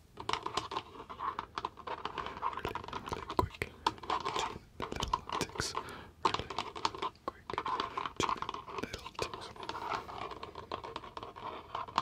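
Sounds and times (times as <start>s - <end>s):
fingertips tapping fast: 0.2s - 12.0s.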